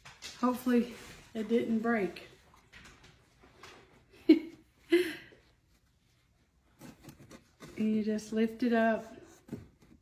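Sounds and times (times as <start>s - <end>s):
woman speaking: 0.4s - 2.4s, 7.7s - 9.3s.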